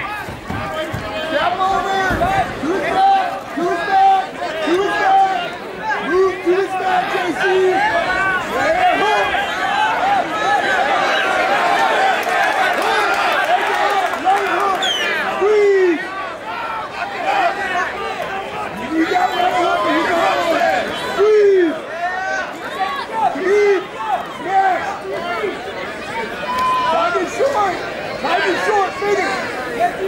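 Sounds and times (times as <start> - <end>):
crowd shouting and yelling: 0.0 - 30.0.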